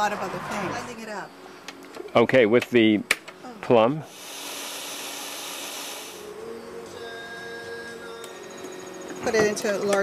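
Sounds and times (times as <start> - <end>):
faint steady tones: 3.3 - 10.0.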